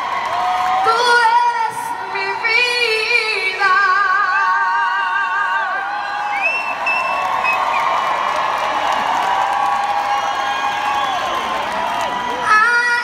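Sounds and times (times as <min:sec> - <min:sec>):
crowd whoops: 0:00.0 - 0:01.5, 0:04.3 - 0:13.0
audience applauding and cheering: 0:00.0 - 0:02.9, 0:03.7 - 0:13.0.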